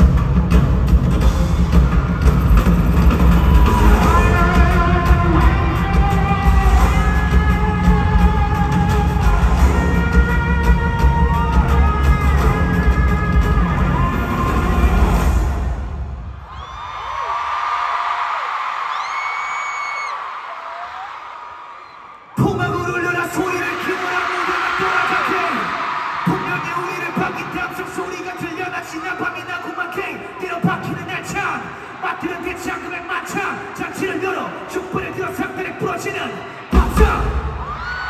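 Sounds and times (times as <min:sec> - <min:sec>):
live pop music with heavy bass: 0:00.0 - 0:16.0, 0:36.0 - 0:38.0
crowd cheering: 0:00.0 - 0:38.0.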